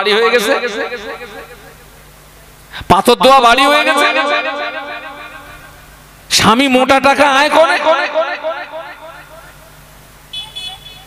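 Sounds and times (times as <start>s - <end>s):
public address system hum: 0.0s - 11.0s.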